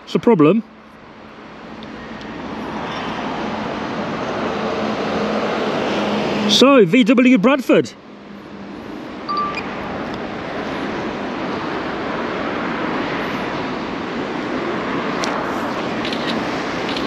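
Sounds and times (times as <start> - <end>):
road traffic rushing: 0.0 - 17.0.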